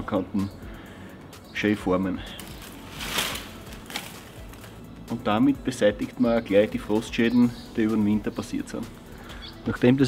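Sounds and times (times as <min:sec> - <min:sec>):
rustling noise: 0:02.4 - 0:04.8.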